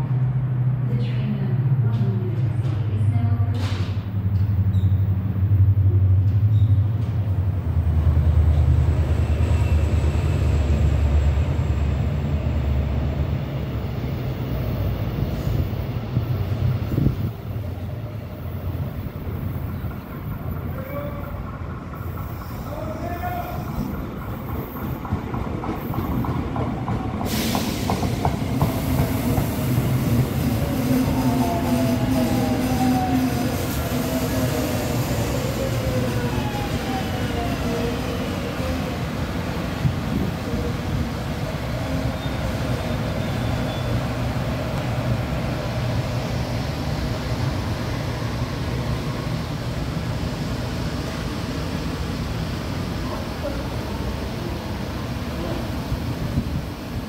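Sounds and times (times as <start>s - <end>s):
train pulling in: 0.0s - 57.0s
train brakes whining: 27.2s - 39.2s.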